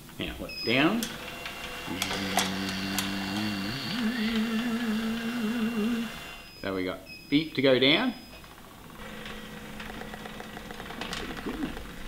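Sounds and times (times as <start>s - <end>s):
motor start clicks: 1.0s - 6.4s, 8.9s - 12.0s
electric motor whining: 1.0s - 6.5s, 9.0s - 12.0s.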